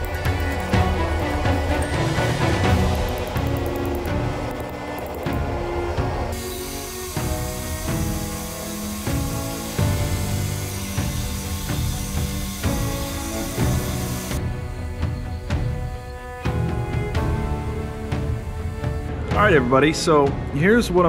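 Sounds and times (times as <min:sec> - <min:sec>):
belt grinder grinding steel: 0:00.0 - 0:16.0
background music: 0:00.0 - 0:21.0.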